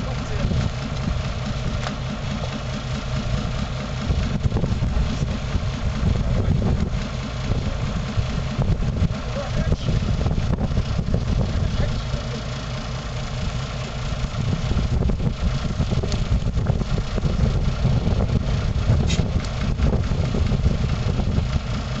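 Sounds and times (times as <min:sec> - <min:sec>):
truck engine idling: 0:00.0 - 0:22.0.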